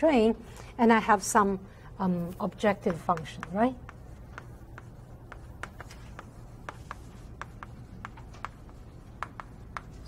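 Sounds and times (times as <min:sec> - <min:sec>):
low room hum: 0:00.0 - 0:10.0
chalk tapping and scratching on board: 0:02.4 - 0:10.0.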